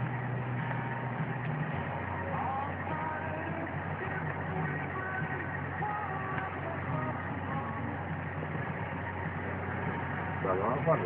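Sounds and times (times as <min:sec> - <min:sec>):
car engine drone: 0:00.0 - 0:11.0
road noise: 0:00.0 - 0:11.0.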